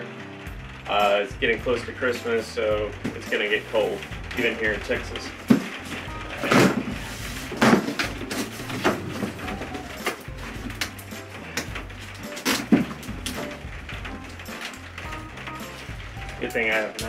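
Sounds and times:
background music with bass: 0:00.0 - 0:17.0
cardboard ripping: 0:03.8 - 0:13.6.

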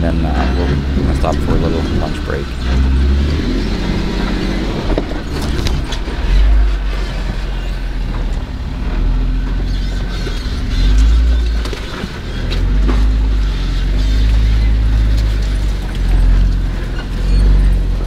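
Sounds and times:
knocks and rattles: 0:00.0 - 0:08.5
car engine low rumble: 0:00.0 - 0:18.0.

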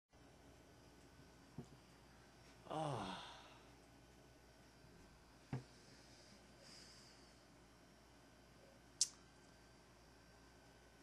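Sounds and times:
man sighing: 0:02.6 - 0:03.7.

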